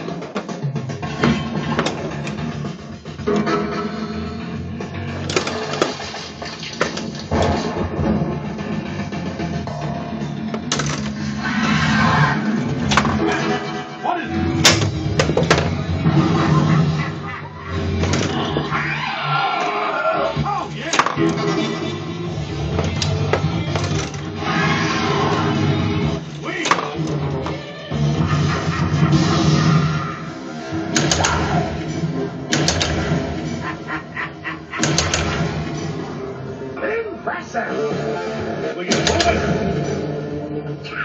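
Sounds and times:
pinball game music: 0.0 - 18.7, 20.4 - 36.8, 37.8 - 40.8
pinball mechanical clacks: 10.6 - 11.2, 32.5 - 33.2, 34.8 - 35.5.

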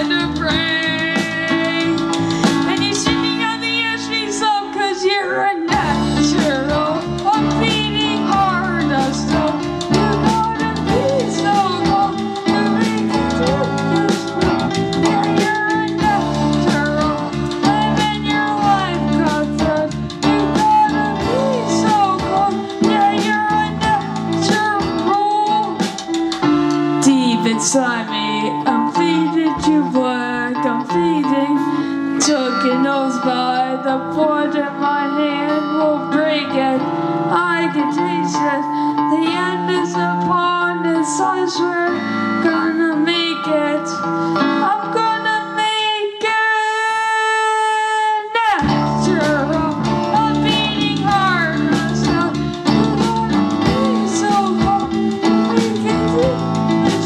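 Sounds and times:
bending lead guitar melody: 0.0 - 57.0
live rock band: 0.0 - 57.0.

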